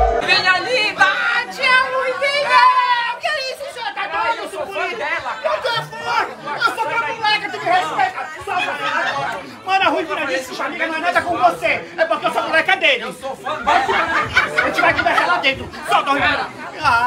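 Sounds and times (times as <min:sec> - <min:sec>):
overlapping chatter of voices: 0:00.0 - 0:17.0.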